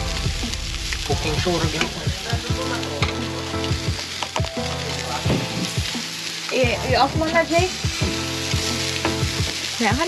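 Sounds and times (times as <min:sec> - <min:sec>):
meat sizzling on a grill: 0:00.0 - 0:10.0.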